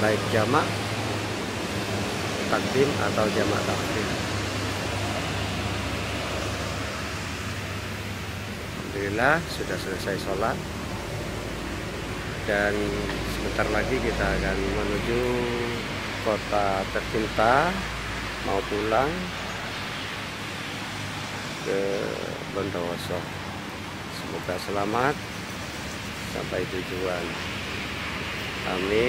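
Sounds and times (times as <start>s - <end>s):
man speaking: 0.0s - 0.7s, 2.4s - 4.3s, 8.8s - 10.6s, 12.5s - 19.3s, 21.6s - 23.3s, 24.1s - 25.2s, 26.3s - 27.4s, 28.6s - 29.0s
outdoor background hiss: 0.0s - 29.0s
steady rushing noise: 0.0s - 29.0s.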